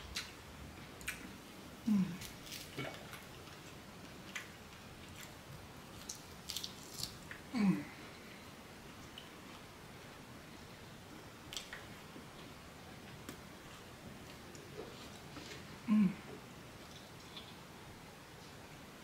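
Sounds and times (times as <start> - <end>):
person humming: 1.8 - 2.2, 7.5 - 8.0, 15.8 - 16.3
person chewing: 2.0 - 7.5.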